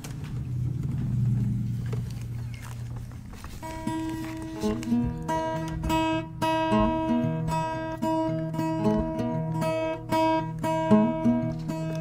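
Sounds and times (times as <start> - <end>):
low droning rumble: 0.0 - 7.5
acoustic guitar notes: 0.0 - 12.0.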